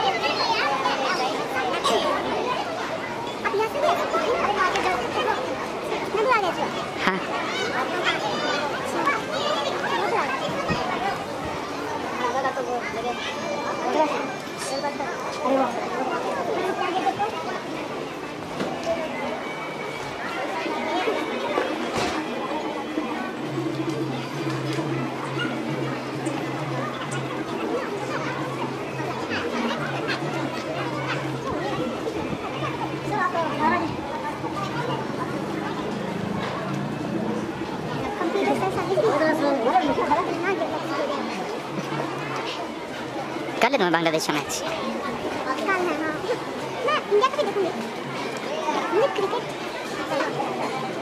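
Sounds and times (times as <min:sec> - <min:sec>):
overlapping voices of passers-by: 0:00.0 - 0:51.0.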